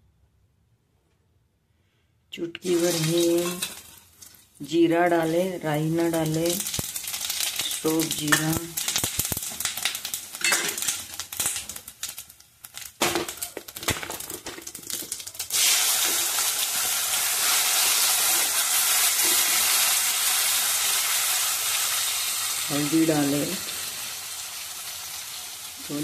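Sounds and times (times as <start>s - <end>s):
loud steady sizzle: 2.6s - 26.0s
spices crackling in hot fat: 2.6s - 26.0s.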